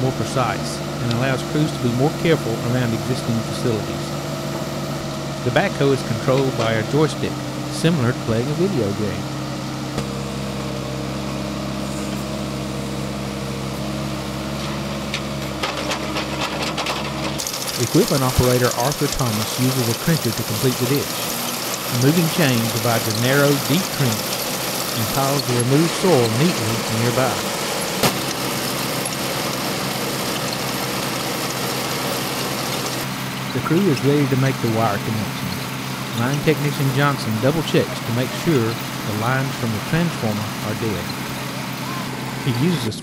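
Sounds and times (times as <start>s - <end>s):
excavator diesel engine running: 0.0s - 43.0s.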